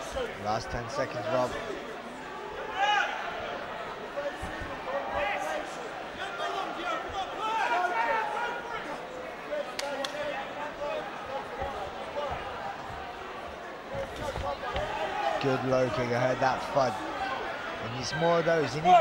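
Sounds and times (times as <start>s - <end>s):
voices shouting in arena: 0.0s - 13.0s, 13.7s - 19.0s.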